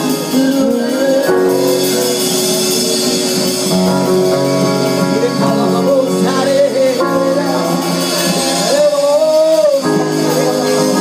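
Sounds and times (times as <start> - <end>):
band playing held chords: 0.0 - 11.0
singers on microphones: 0.0 - 11.0.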